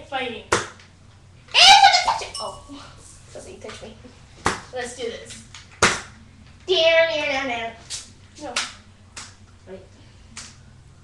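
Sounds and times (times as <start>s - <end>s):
child shouting: 1.5s - 2.4s.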